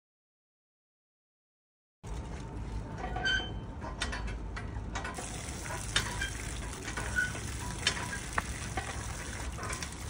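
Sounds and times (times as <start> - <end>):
pump mechanism knocks: 5.0 - 10.0.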